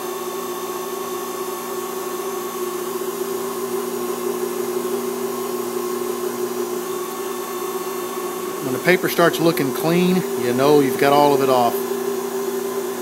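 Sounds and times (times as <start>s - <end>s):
wood lathe motor humming: 1.5s - 13.0s.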